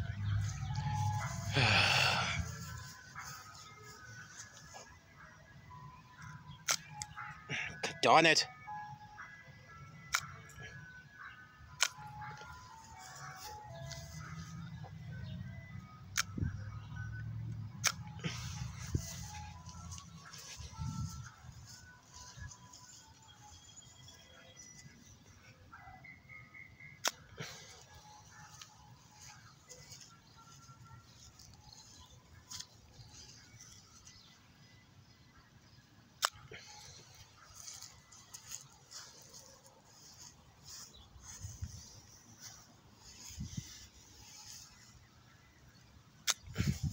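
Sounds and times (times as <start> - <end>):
low rumble: 0.0 - 1.5
ice cream truck chime melody: 0.0 - 46.9.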